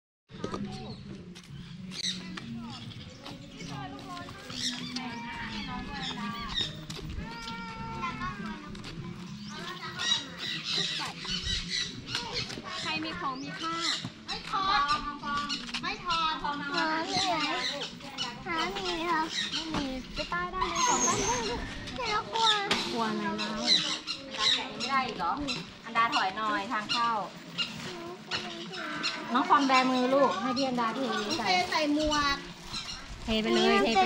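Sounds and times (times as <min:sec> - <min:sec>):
murmur of voices: 0:00.3 - 0:34.0
birds chirping and whistling: 0:00.6 - 0:34.0
woman and children talking: 0:02.1 - 0:34.0.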